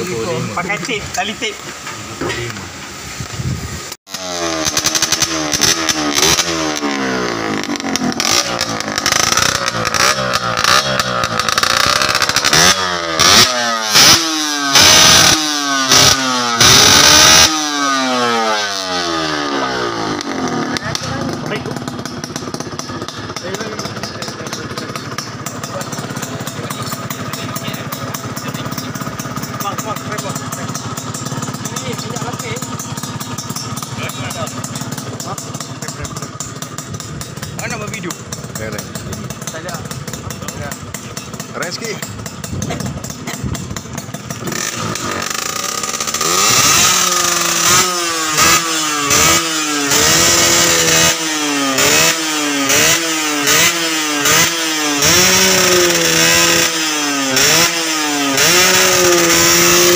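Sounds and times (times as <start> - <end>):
two-stroke engine revving: 0.0 - 59.9.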